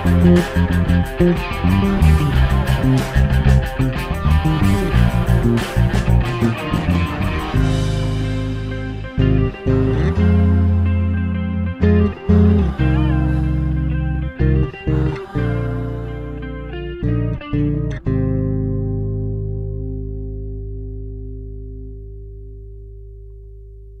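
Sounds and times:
rock backing track: 0.0 - 15.3
electric bass played fingerstyle: 0.0 - 24.0.

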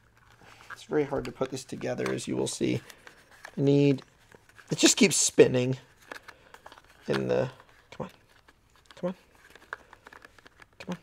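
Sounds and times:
plastic holster parts clicking: 6.0 - 11.0.

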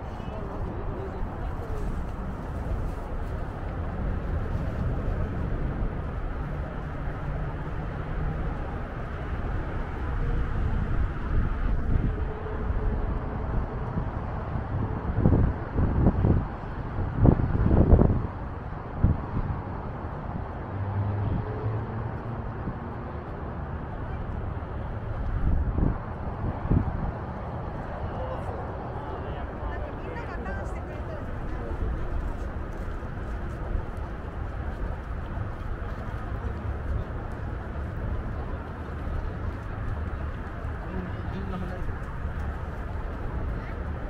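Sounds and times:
wind buffeting microphone: 0.0 - 44.0.

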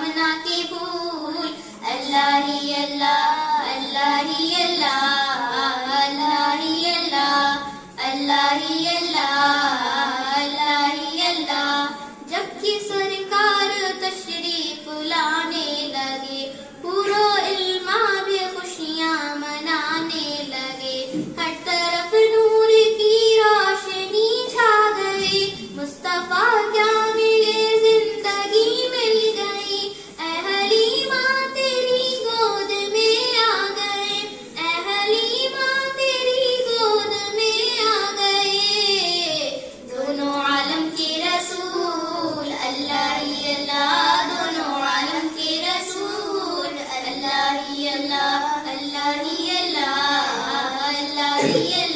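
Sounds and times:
girl singing into microphone: 0.0 - 51.9.

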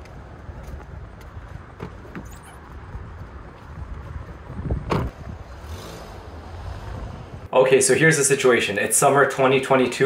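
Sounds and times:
wind rumble on microphone: 0.0 - 7.5
car door slamming: 4.8 - 5.2.

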